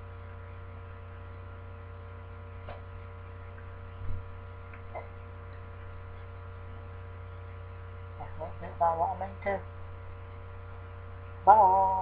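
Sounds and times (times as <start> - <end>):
electrical mains hum: 0.0 - 12.0
man singing a long held vowel: 11.4 - 12.0.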